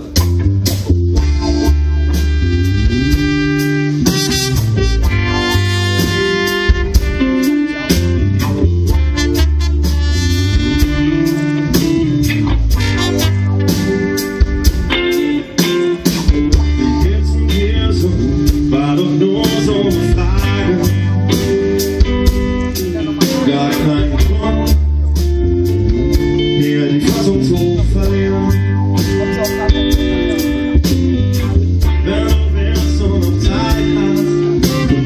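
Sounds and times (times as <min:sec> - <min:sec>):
bass guitar: 0:00.0 - 0:35.0
drum kit steady beat: 0:00.0 - 0:35.0
electric guitar: 0:00.0 - 0:35.0
horn playing held notes: 0:01.2 - 0:14.0.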